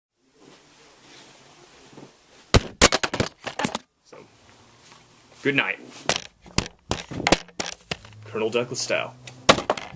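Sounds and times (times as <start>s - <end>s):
hat knocking and scraping on camera: 6.1s - 8.2s.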